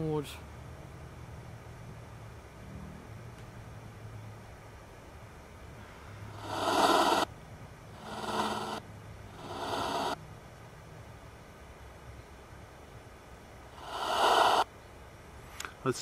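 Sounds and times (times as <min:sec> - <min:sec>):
static-laden garbled bursts: 0:06.4 - 0:07.3, 0:08.0 - 0:10.2, 0:13.8 - 0:14.6.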